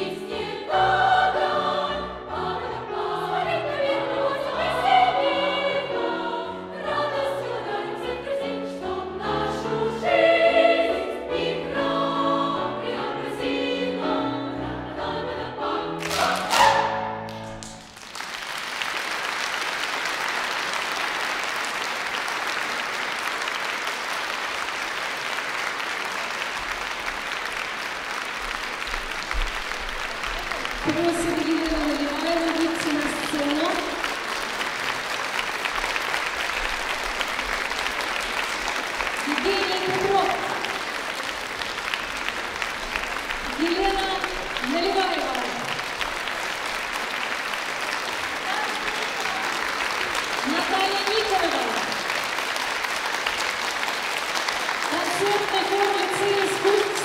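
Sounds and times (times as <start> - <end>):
girls' choir singing: 0.0 - 17.3
piano accompaniment: 0.0 - 18.3
audience applause: 16.0 - 57.0.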